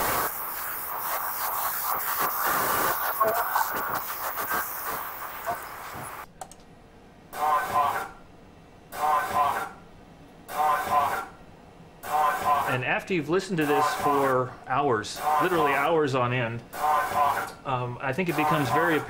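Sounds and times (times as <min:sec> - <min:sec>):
heavy hiss: 0:00.0 - 0:06.2
looped spoken snippet: 0:02.3 - 0:06.3, 0:07.4 - 0:08.1, 0:09.0 - 0:09.7, 0:12.0 - 0:19.0
crew speech: 0:03.1 - 0:04.0, 0:07.4 - 0:08.1, 0:12.1 - 0:12.9, 0:13.6 - 0:14.5, 0:15.2 - 0:15.9, 0:16.8 - 0:19.0.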